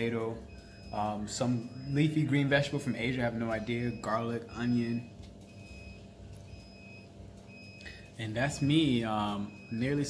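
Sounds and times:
low rumble and hum: 0.0s - 10.0s.

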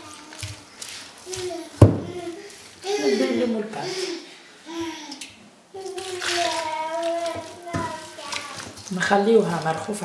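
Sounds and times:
water pouring onto flour: 0.0s - 4.0s, 5.7s - 10.0s.

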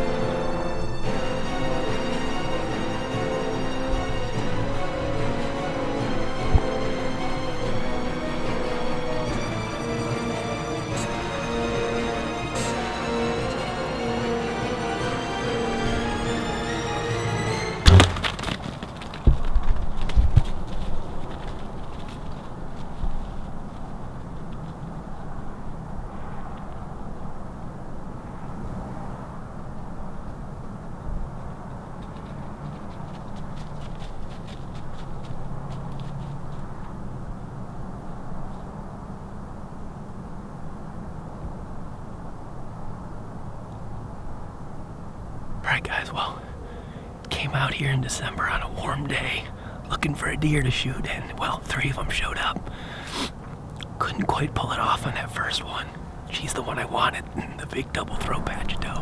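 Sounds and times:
background music: 0.0s - 18.4s
low steady background noise: 0.0s - 59.0s
bow shot crack: 17.8s - 18.8s
dull thumps: 17.8s - 20.5s.

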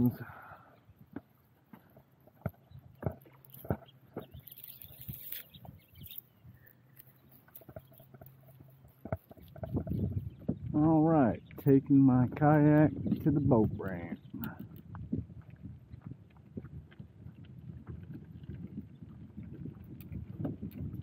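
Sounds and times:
cast net rustle: 4.3s - 6.3s.

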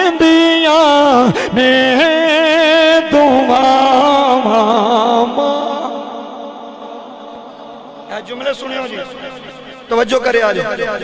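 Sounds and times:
man chanting into a microphone: 0.0s - 11.0s.

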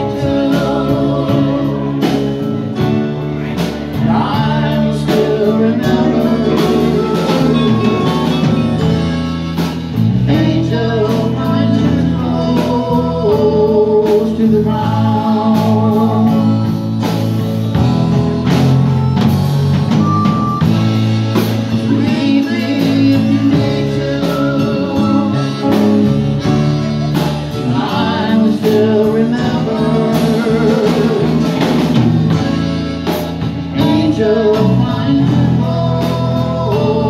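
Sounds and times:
country band playing live: 0.0s - 37.0s
harmonica wavering melody: 4.8s - 10.9s, 15.2s - 34.4s.

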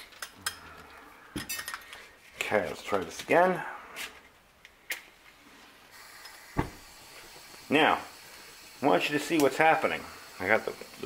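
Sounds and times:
propane hissing from valve: 5.9s - 11.0s.

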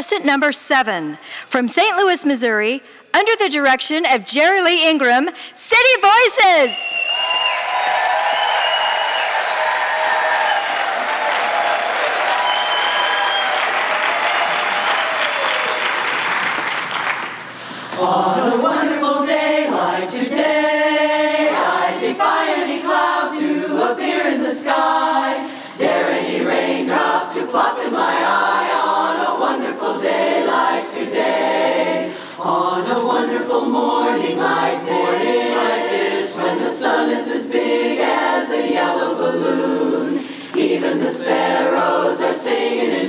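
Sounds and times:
audience applause and cheering: 7.0s - 17.7s
women's a cappella chorus singing: 17.9s - 43.0s.

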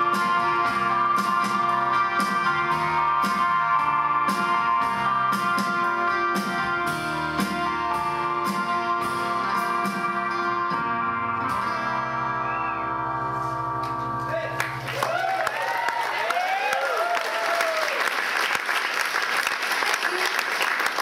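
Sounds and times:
electric guitar chord ringing: 0.0s - 15.0s
audience applause: 14.4s - 21.0s
whoops and cheers: 14.8s - 18.1s.

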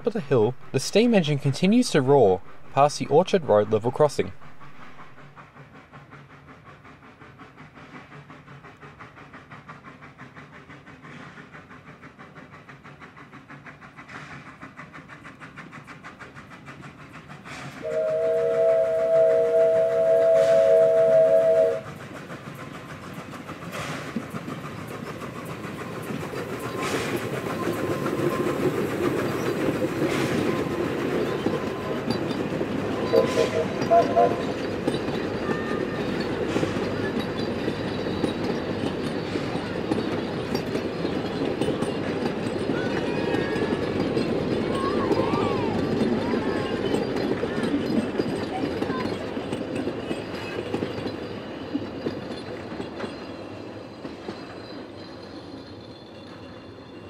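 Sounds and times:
steam locomotive exhaust beats: 0.0s - 57.0s
train rumbling past: 0.0s - 57.0s
wheels clicking over rail joints: 5.3s - 57.0s
steam whistle chord: 17.8s - 21.8s.

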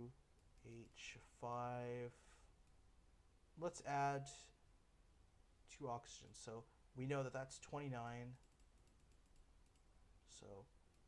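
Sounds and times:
faint computer clicks: 8.3s - 11.0s.

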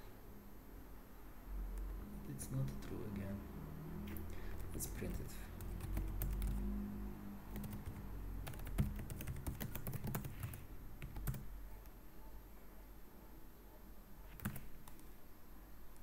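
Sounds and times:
computer keyboard typing: 4.5s - 6.7s, 7.5s - 12.0s, 14.3s - 15.1s.

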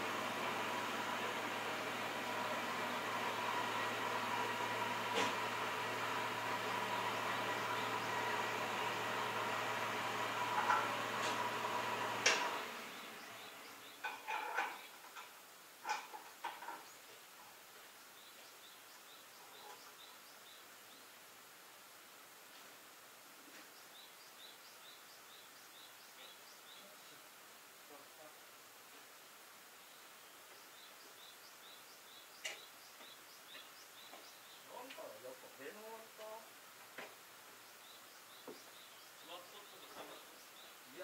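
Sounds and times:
tractor diesel engine idling: 0.0s - 14.0s
birds chirping: 0.5s - 21.4s, 23.2s - 41.0s.

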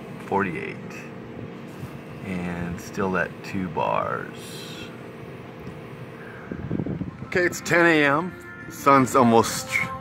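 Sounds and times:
faint steady hum: 0.0s - 10.0s
wind buffeting microphone: 6.0s - 7.6s.

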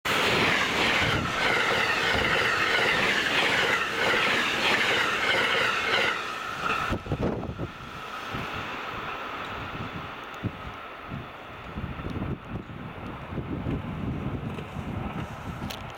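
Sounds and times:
electric train passing on rails: 0.1s - 15.9s.

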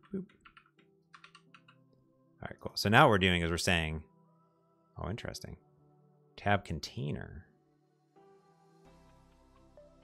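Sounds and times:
computer keyboard typing: 0.0s - 1.8s.

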